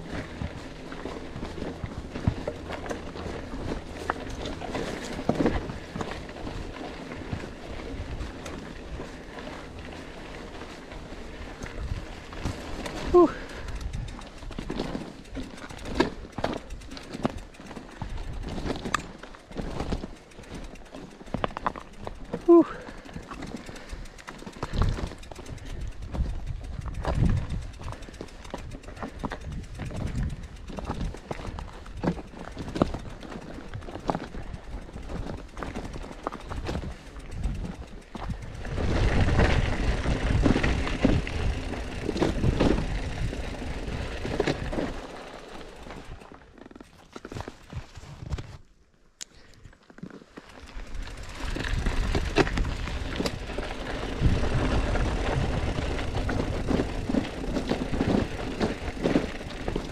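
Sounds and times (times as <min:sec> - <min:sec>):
footsteps on gravel: 0:00.0 - 0:11.4
bike rattling and knocking: 0:00.0 - 0:48.7, 0:49.8 - 0:59.9.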